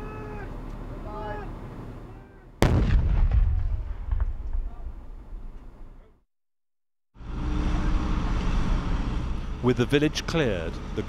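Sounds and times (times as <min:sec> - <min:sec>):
loud explosion with rumble: 0:02.6 - 0:05.6.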